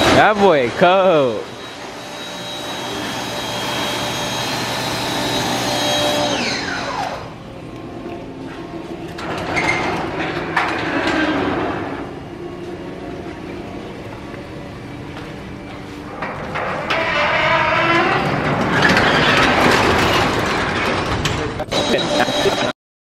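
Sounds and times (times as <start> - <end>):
workshop noise: 0.0 - 22.8
shop vacuum motor whining: 0.8 - 9.2, 21.7 - 22.7.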